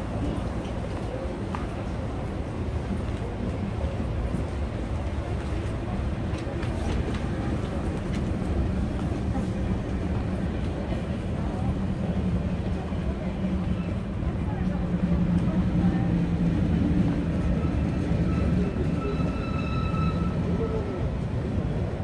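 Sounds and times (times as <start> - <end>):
people's voices: 0.0 - 22.0
train rumbling: 0.0 - 22.0.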